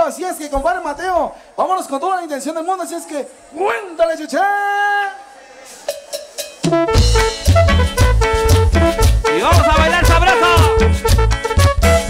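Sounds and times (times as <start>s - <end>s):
live cumbia band: 5.6s - 12.0s
person shouting: 9.4s - 10.8s.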